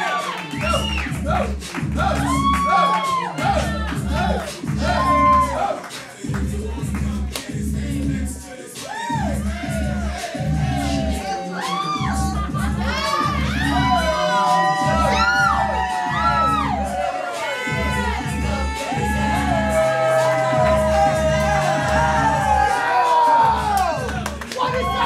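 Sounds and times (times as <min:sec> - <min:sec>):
crowd cheering and whooping: 0:00.0 - 0:06.0, 0:08.8 - 0:25.0
dance music with heavy bass: 0:00.0 - 0:25.0.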